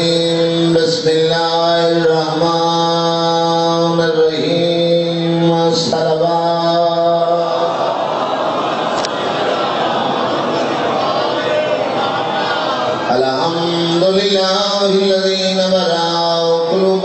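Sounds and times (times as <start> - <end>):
man chanting through microphone: 0.0 - 8.0, 11.0 - 17.0.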